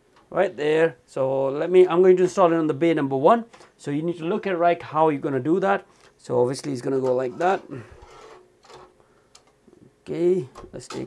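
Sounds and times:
faint drive tray scrape: 0:06.9 - 0:09.0.

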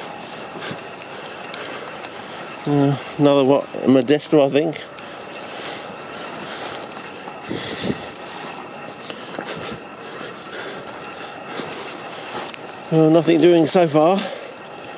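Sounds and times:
footsteps through dry scrub: 0:00.0 - 0:14.9.

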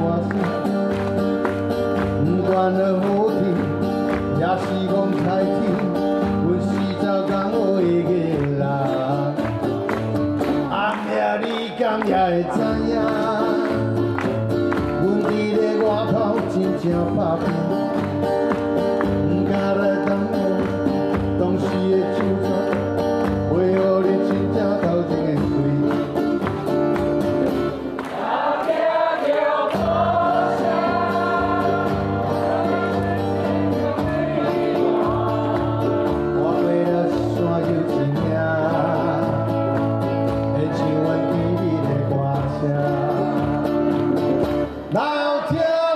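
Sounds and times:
acoustic guitars: 0:00.0 - 0:45.9
person singing: 0:10.6 - 0:14.0, 0:28.7 - 0:45.9.

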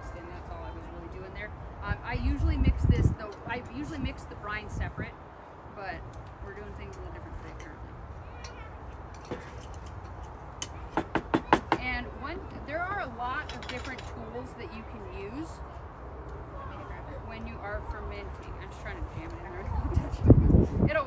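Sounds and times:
wind rumble on microphone: 0:00.0 - 0:08.2, 0:12.1 - 0:21.0.

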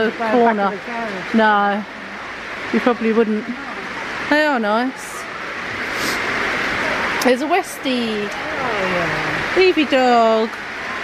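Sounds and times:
heavy rain on roof: 0:00.0 - 0:04.9, 0:05.7 - 0:11.0.

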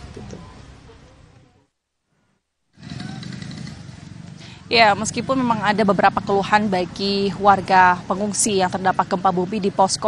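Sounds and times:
outdoor background rumble: 0:02.7 - 0:10.0.

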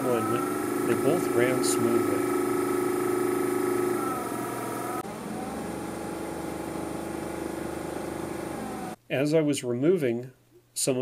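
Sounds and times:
small electric motors whining: 0:00.0 - 0:09.0.

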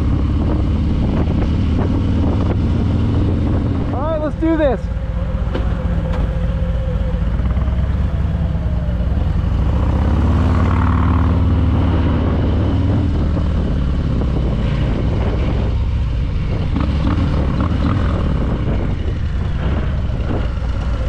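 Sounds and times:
wind rush over microphone: 0:00.0 - 0:04.8, 0:08.4 - 0:21.0
motorcycle engine running: 0:00.0 - 0:21.0.

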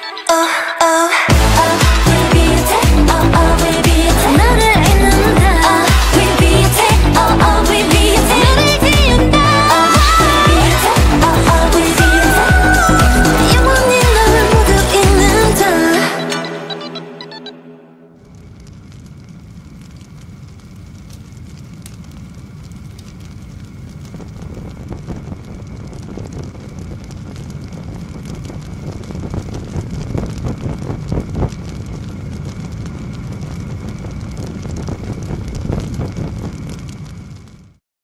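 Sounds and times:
large fire crackling: 0:00.3 - 0:16.9, 0:18.1 - 0:37.8.

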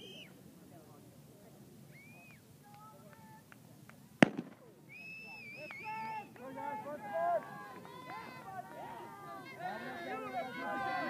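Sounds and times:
starting pistol shot: 0:04.2 - 0:04.7.

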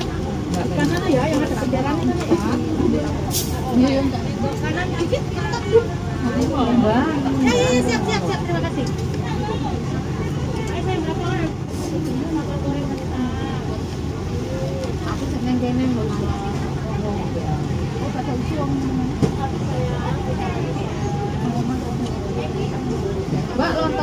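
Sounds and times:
people chattering: 0:00.0 - 0:24.0.

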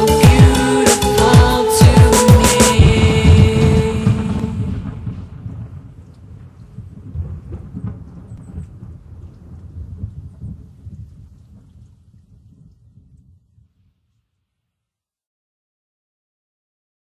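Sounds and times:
low irregular rumble: 0:02.8 - 0:13.2
faint scattered crackles: 0:02.9 - 0:14.3.

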